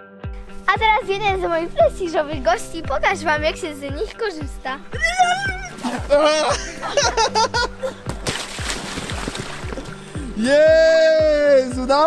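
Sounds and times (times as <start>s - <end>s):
background music with kick drum: 0.0s - 12.0s
body sliding on wet plastic: 8.1s - 10.0s.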